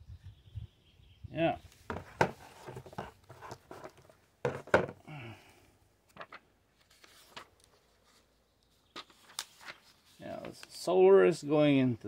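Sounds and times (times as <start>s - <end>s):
paper rustling: 1.9s - 4.8s, 6.2s - 10.9s.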